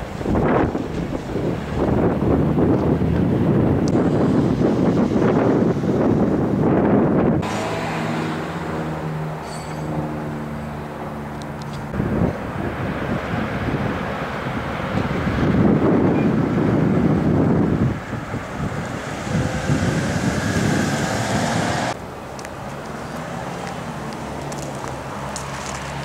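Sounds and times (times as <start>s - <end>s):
street traffic: 0.0s - 26.0s
vehicle passing: 0.0s - 26.0s
wind buffeting microphone: 0.0s - 26.0s.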